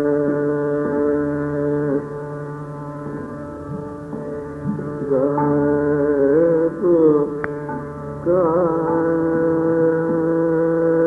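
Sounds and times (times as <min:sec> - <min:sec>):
man singing long note: 0:05.0 - 0:07.5, 0:08.2 - 0:11.0.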